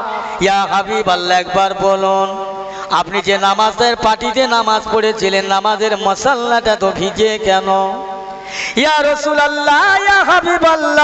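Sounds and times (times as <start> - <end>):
man chanting into a microphone: 0.0 - 11.0.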